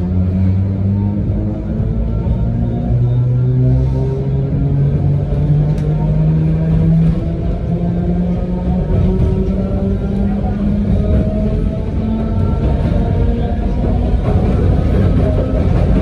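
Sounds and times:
train running rumble: 0:00.0 - 0:16.0.

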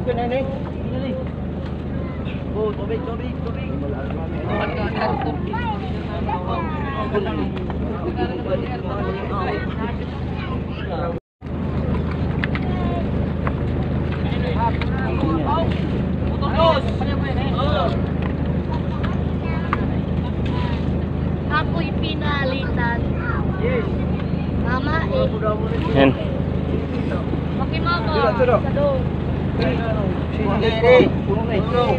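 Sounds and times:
boat engine idling: 0:00.0 - 0:31.9
many voices chattering: 0:00.0 - 0:31.9.

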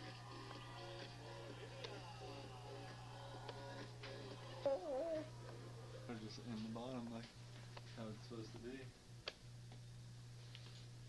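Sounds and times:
high-pitched wavering vocal call: 0:04.6 - 0:05.3.

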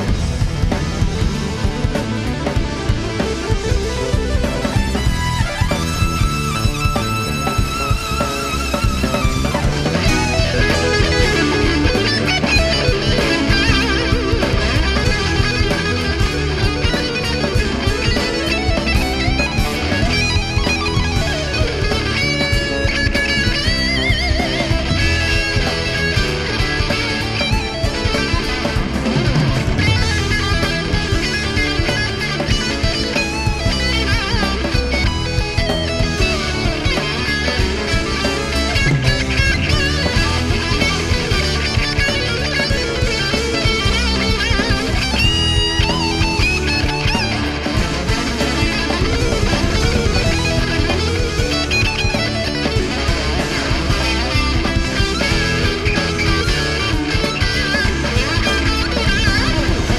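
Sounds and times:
electric guitar solo: 0:00.0 - 0:59.9
rock band playing: 0:00.0 - 0:59.9.

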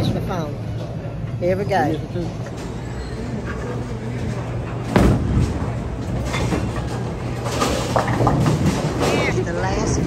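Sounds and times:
bowling alley clatter: 0:02.4 - 0:10.0
bowling ball rolling: 0:02.5 - 0:10.0
bowling ball thud on lane: 0:04.8 - 0:05.7.

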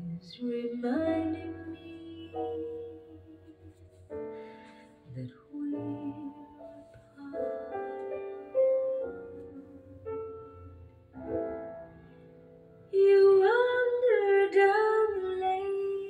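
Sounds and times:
woman singing with vibrato: 0:00.0 - 0:03.8, 0:05.2 - 0:08.1
piano chords: 0:00.0 - 0:16.0.

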